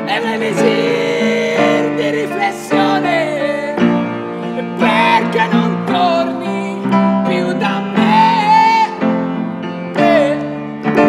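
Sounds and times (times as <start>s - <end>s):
man singing: 0.0s - 11.0s
piano chords: 0.0s - 11.0s.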